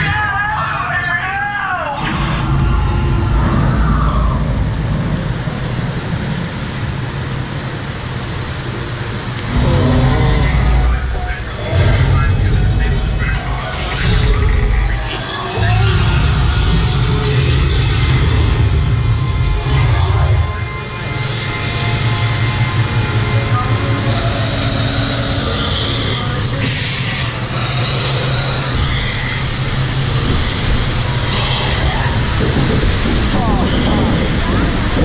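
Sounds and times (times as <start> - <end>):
boat ride mechanical rumble: 0.0 - 35.0
ride soundtrack voices: 9.3 - 17.6.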